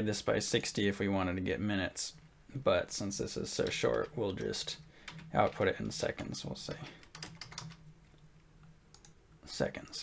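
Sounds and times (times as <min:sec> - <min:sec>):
computer keyboard typing: 0:03.6 - 0:07.8, 0:08.9 - 0:09.2.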